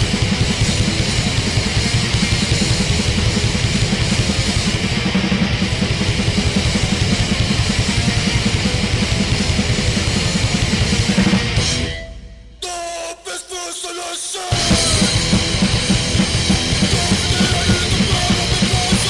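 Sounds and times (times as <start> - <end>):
heavy metal music: 0.0 - 19.0.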